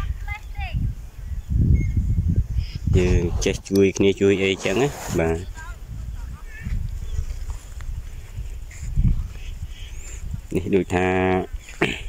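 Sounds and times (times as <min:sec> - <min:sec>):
wind buffeting microphone: 0:00.0 - 0:12.0
faint bird chirp: 0:01.2 - 0:02.9, 0:08.9 - 0:10.3.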